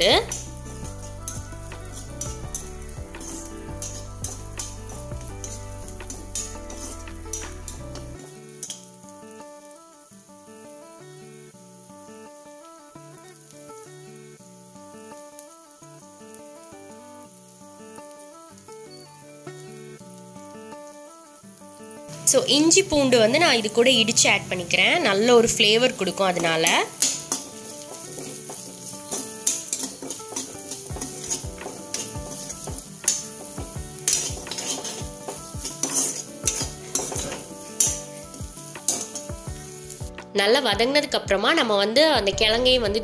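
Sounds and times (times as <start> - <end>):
metal spatula scraping pan: 0.0 - 8.9, 25.5 - 40.0
onions sizzling in oil: 0.0 - 40.8
background music: 0.0 - 43.0.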